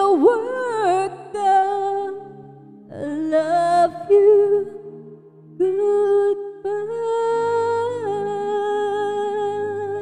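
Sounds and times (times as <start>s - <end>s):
backing track of sustained chords: 0.0s - 10.0s
woman singing: 0.0s - 10.0s.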